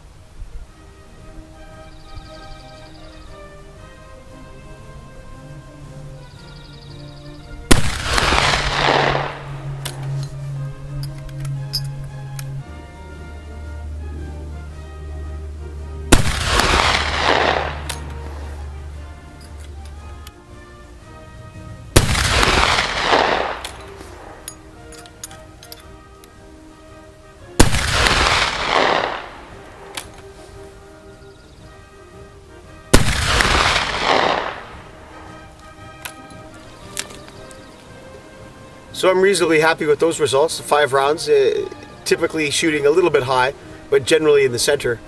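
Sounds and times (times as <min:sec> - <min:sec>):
rifle shots with echo: 0:07.7 - 0:09.8, 0:16.1 - 0:18.5, 0:22.0 - 0:24.4, 0:27.6 - 0:29.9, 0:32.9 - 0:34.8.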